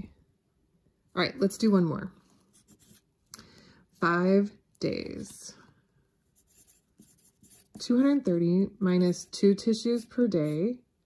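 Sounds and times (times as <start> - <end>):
pencil scratching on paper: 2.4 - 3.1, 6.2 - 10.8.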